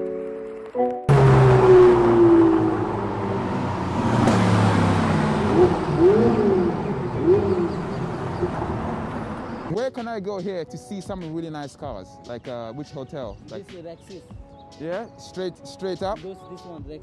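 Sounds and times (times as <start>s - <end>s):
short tones rising and falling: 1.1s - 9.7s
sports cars driving past: 1.1s - 9.7s.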